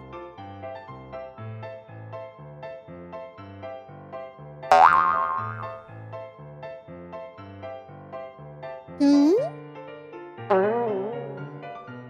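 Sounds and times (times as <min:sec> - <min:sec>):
cartoon boing sound effect: 0:04.7 - 0:05.7, 0:09.0 - 0:09.5.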